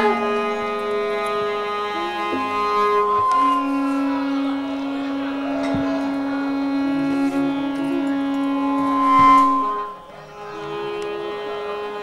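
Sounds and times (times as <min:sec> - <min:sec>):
faint melody: 0:00.0 - 0:12.0
wind instrument long note: 0:00.0 - 0:12.0.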